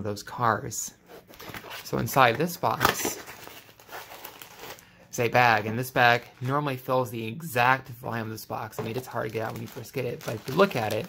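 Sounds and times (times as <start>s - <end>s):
plastic bag crinkling: 1.5s - 4.9s, 8.8s - 11.0s.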